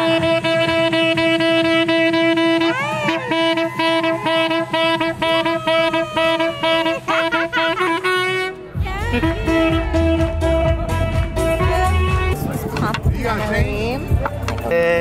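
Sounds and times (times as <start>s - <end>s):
tenor saxophone melody: 0.0s - 15.0s
heavy bass: 8.6s - 15.0s
backing track with beat: 8.7s - 15.0s.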